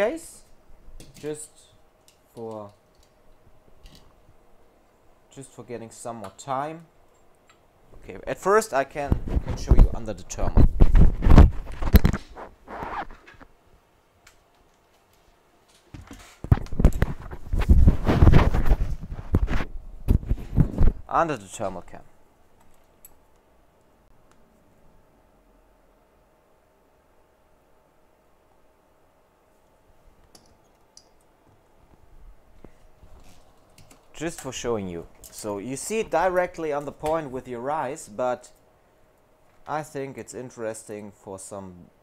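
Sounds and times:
faint steady hum: 0.0s - 42.0s.

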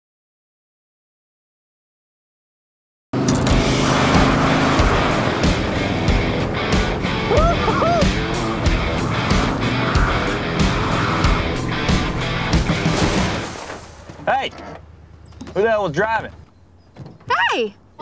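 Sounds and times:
race car engines running hard: 3.2s - 13.4s
driving music with steady beat: 5.3s - 13.0s
tyre squeals: 7.3s - 12.4s.

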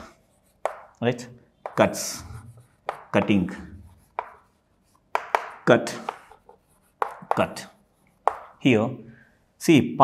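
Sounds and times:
chalk tapping and scraping: 0.0s - 8.7s
man speaking: 1.0s - 3.9s, 5.6s - 6.2s, 7.2s - 7.8s, 8.6s - 10.0s.

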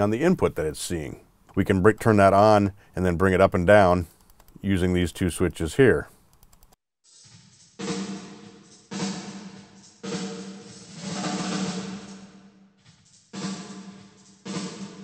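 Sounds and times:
snare drum hits with reverb: 7.8s - 12.4s, 13.4s - 15.0s.

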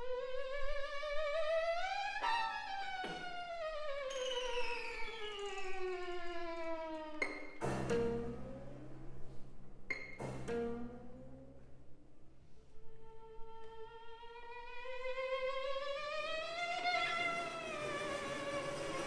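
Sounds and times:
bowed string glissando: 1.3s - 11.8s.

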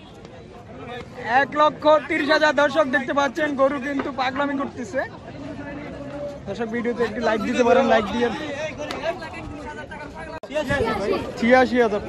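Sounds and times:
men talking and calling: 0.0s - 12.0s.

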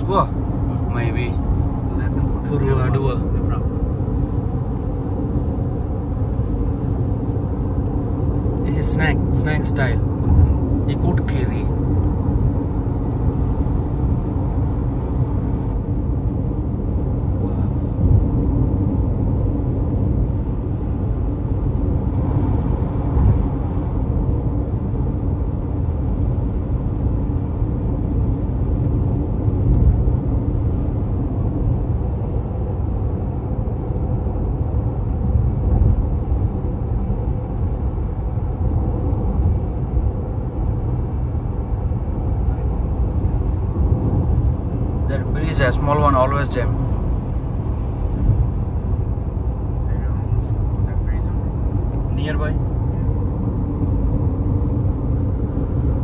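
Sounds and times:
car road and engine rumble: 0.0s - 56.0s.

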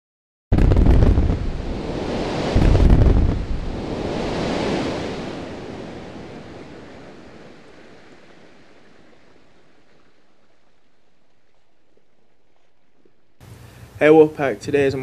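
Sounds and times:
rushing whoosh: 0.6s - 8.3s.

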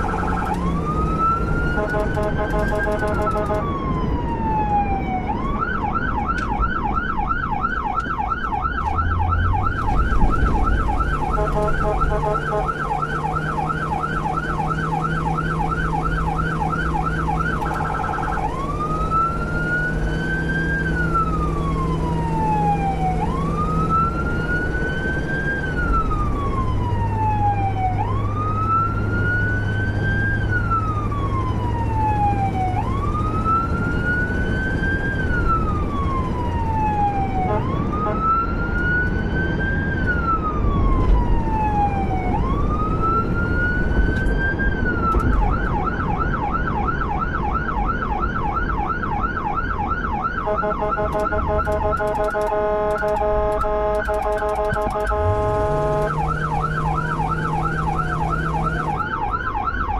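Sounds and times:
emergency siren: 0.0s - 59.9s
engine and road noise: 0.0s - 59.9s.

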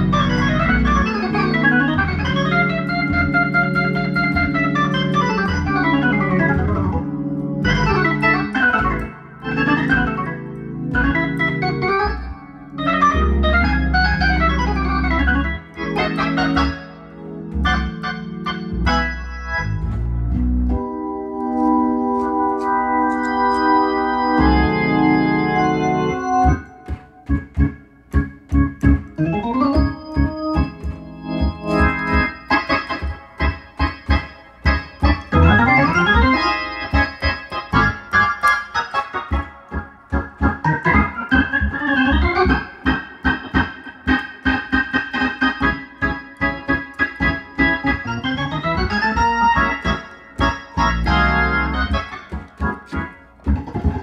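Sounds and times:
organ chords: 0.0s - 54.0s.

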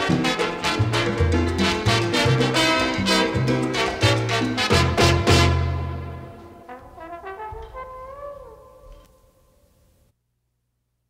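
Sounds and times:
salsa big band chord: 0.0s - 8.9s
lone brass horn phrase: 0.0s - 9.1s.

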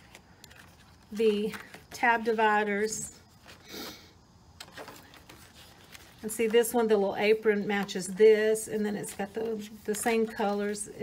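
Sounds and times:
light ticks of card dividers: 0.0s - 1.9s
paper pages rustling: 0.0s - 3.7s, 4.6s - 11.0s.

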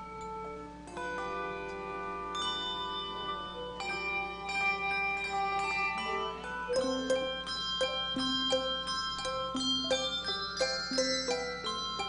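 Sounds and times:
handbell chords ringing: 0.0s - 12.0s.

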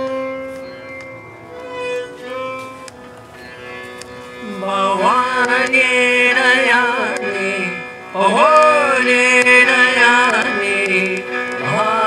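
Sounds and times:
bowed violin sustained note: 0.0s - 12.0s
man singing: 4.4s - 12.0s.

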